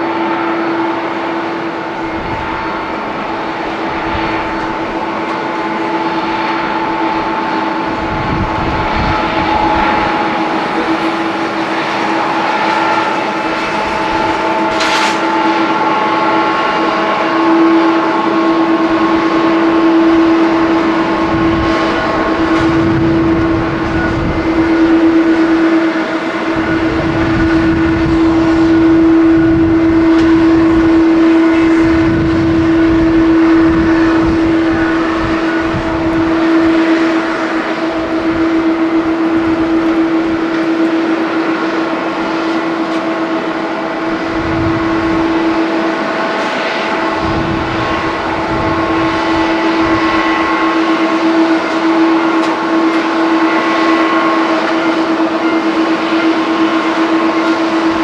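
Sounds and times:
jet engine whine: 0.0 - 58.0
low rumble: 1.8 - 42.0, 43.0 - 52.9.

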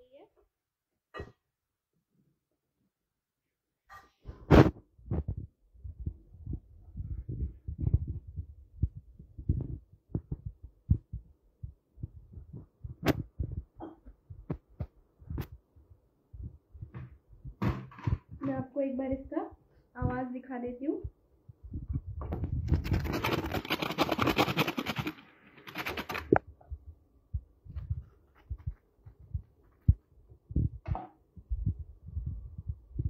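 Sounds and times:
soft low thumps: 4.6 - 20.3, 21.0 - 22.8, 26.5 - 33.0.

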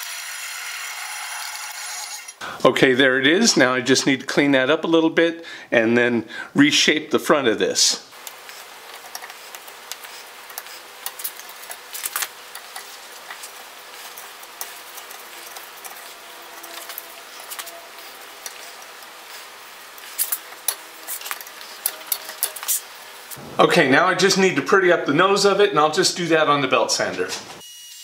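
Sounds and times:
steady hiss: 8.0 - 25.5
chisel scraping wood: 8.3 - 22.9.

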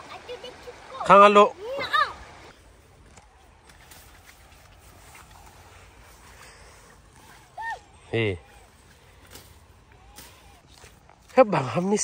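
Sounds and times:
rustling of leafy undergrowth: 1.6 - 12.0
child's high call: 7.6 - 8.1.

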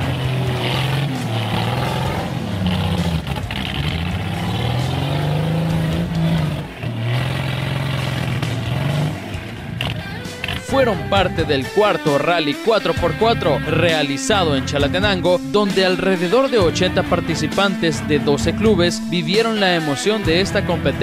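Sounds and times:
off-road vehicle engine revving: 0.0 - 21.0.

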